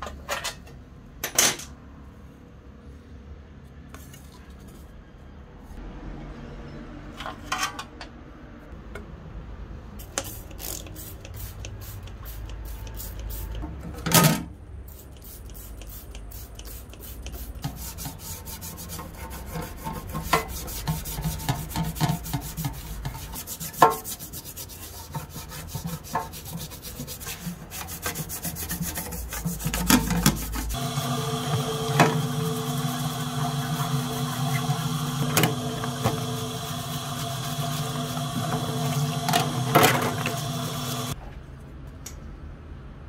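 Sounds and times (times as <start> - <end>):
toothbrush scrubbing metal: 15.0 - 30.8, 31.5 - 41.2.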